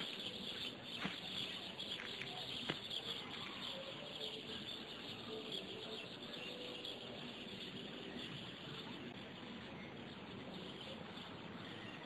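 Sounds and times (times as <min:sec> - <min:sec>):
insect chorus chirring: 0:00.0 - 0:12.0.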